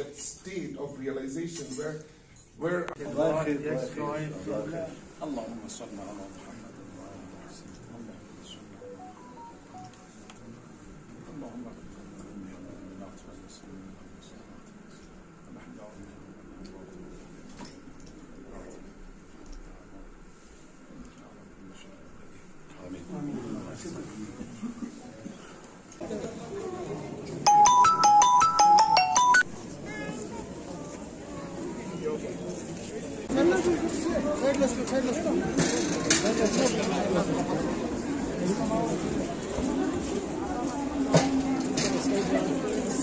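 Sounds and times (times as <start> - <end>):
murmur of voices: 0.0 - 43.0
mobile phone ringtone: 8.8 - 10.1, 27.5 - 29.5.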